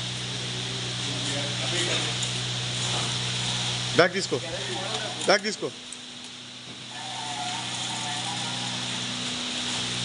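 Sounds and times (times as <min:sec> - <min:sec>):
electric vehicle motor whirring: 0:02.7 - 0:05.4, 0:06.8 - 0:10.0.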